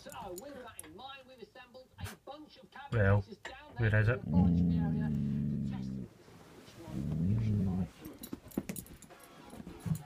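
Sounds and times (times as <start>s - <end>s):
dog growling low: 4.1s - 6.1s, 7.0s - 7.9s.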